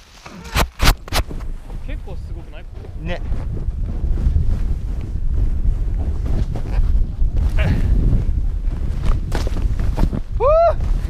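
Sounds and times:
wind buffeting microphone: 0:01.0 - 0:11.0.

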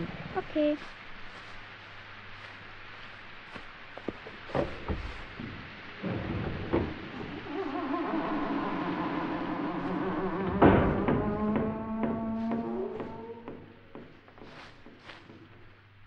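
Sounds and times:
sharp knocks: 0:04.5 - 0:07.5, 0:10.4 - 0:14.2.

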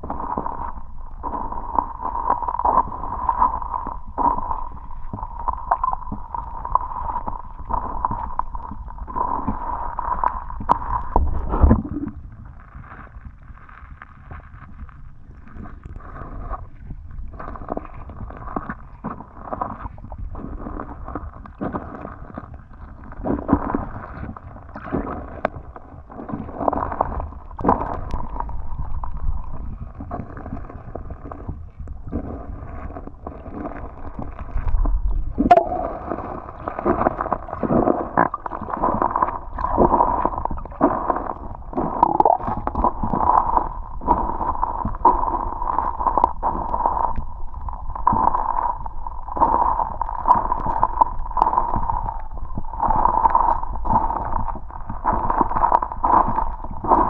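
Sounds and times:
muffled river water rushing: 0:00.0 - 0:57.0.

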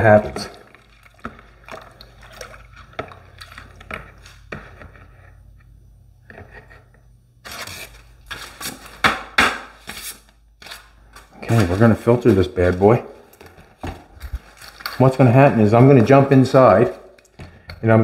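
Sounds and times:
low steady hum: 0:00.0 - 0:18.0
paper strainer crinkling: 0:09.8 - 0:17.2.

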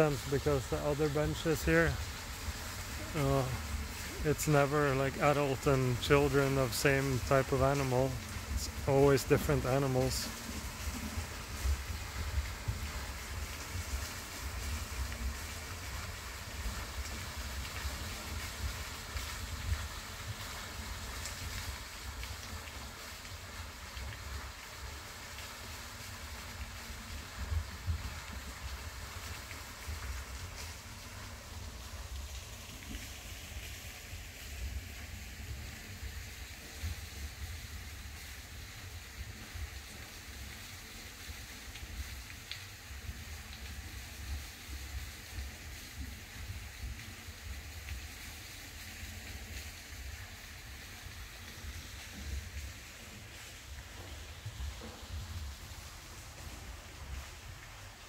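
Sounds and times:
faint outdoor hiss: 0:00.0 - 0:58.0.

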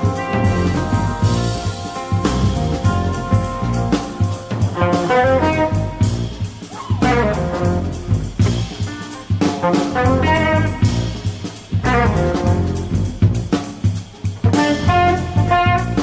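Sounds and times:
electric guitar melody: 0:00.0 - 0:13.3, 0:14.5 - 0:16.0
electric bass: 0:00.0 - 0:13.7, 0:14.4 - 0:16.0
drum kit: 0:00.0 - 0:16.0.

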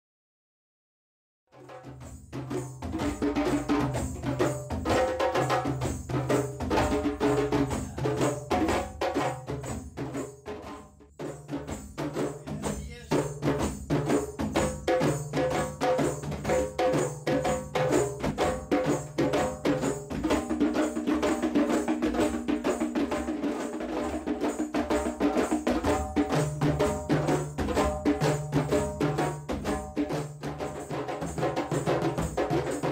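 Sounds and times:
hand drums playing ensemble rhythm: 0:01.6 - 0:32.9.

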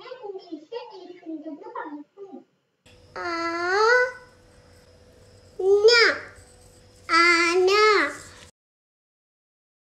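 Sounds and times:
child singing a drawn-out call: 0:03.2 - 0:04.3, 0:07.1 - 0:08.3.

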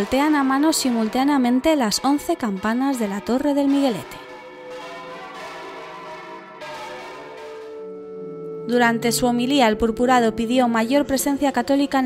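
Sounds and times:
large bells ringing: 0:00.4 - 0:12.0.

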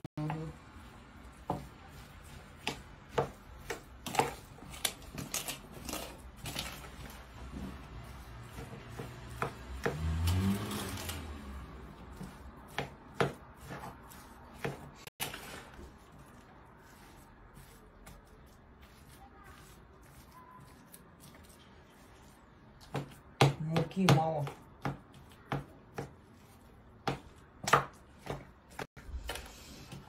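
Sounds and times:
fork scraping plastic bowl: 0:01.2 - 0:23.2.

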